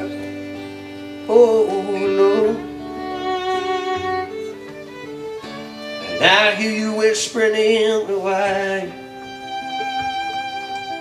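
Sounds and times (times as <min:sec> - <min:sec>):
strummed acoustic guitar: 0:00.0 - 0:11.0
violin playing held notes: 0:00.0 - 0:11.0.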